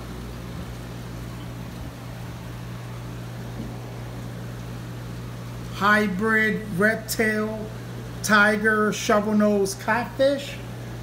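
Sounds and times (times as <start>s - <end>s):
aquarium filters humming: 0.0s - 11.0s.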